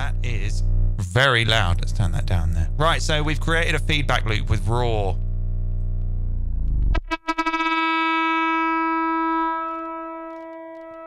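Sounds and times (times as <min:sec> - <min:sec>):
low buzzing distortion drone: 0:00.0 - 0:11.0
steady pitched tone: 0:00.0 - 0:11.0
stuttering clicks: 0:02.8 - 0:07.2.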